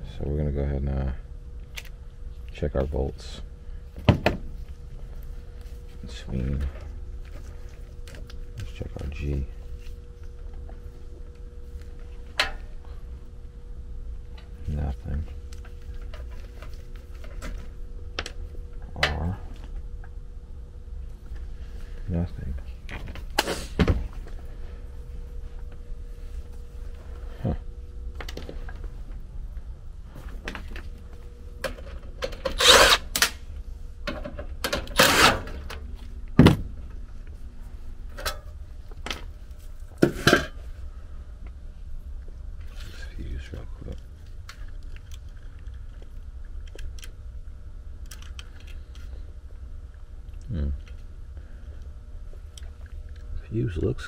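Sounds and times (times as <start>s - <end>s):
electrical hum: 0.0s - 54.0s
clicks and clatter of handling wiring: 3.9s - 12.7s, 28.1s - 29.2s, 43.5s - 47.2s, 48.0s - 49.2s.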